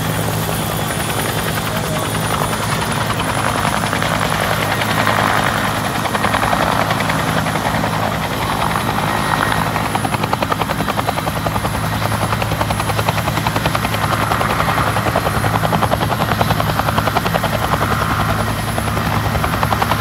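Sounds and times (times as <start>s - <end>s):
helicopter rotor beating: 0.0s - 20.0s
turbine engine hum: 0.0s - 20.0s.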